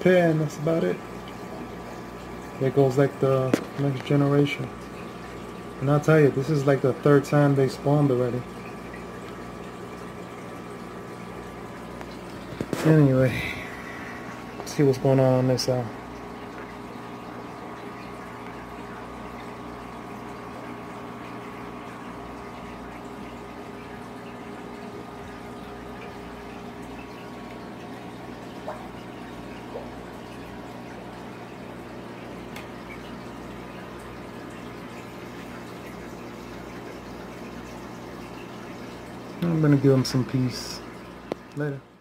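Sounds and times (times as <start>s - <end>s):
aquarium filter hum: 0.0s - 42.0s
low water sound: 0.0s - 42.0s.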